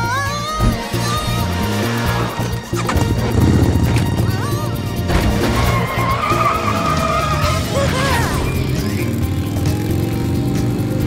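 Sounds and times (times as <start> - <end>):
background music: 0.0 - 11.0
cartoon motorbike engine pulsing: 0.0 - 11.0
long wavering squeal: 0.9 - 9.3.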